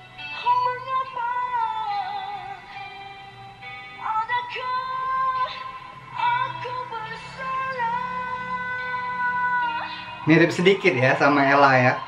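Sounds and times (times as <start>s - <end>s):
high voice singing long notes: 4.0s - 10.6s.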